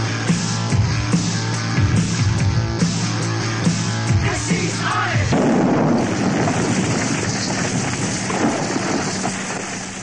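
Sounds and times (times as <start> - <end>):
dense rush of noise: 5.2 - 10.0.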